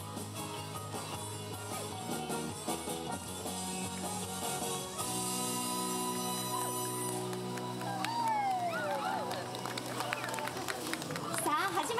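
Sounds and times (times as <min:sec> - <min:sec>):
people's voices: 0:06.1 - 0:11.9
background chatter: 0:07.8 - 0:11.9.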